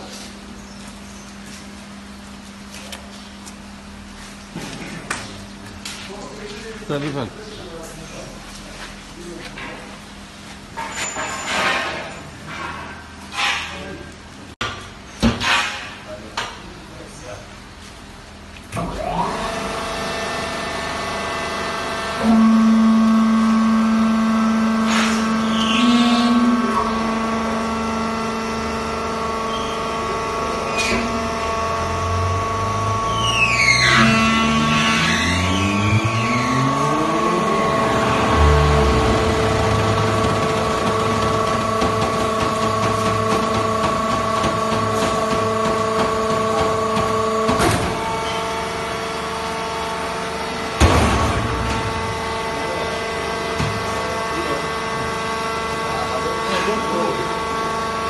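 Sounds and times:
hydraulic power unit humming: 0.0s - 58.0s.

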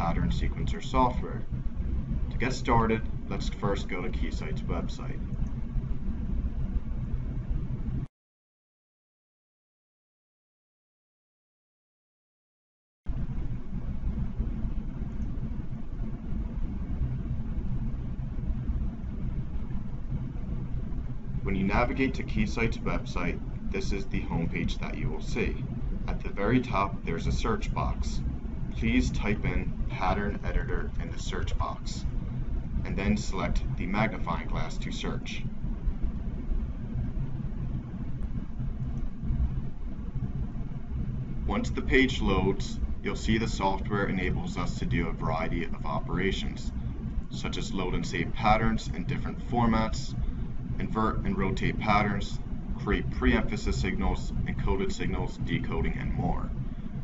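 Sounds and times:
low rumble of background noise: 0.0s - 8.1s, 13.1s - 57.0s.

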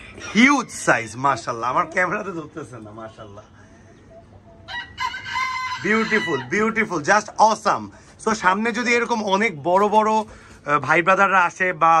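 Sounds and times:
rooster crowing: 4.7s - 6.8s.

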